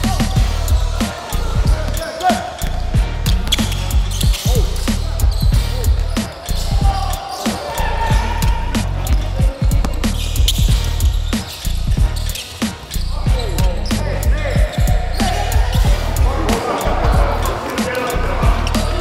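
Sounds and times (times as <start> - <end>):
music with heavy bass beat: 0.0 - 19.0
basketball bouncing on wooden floor: 9.1 - 11.2.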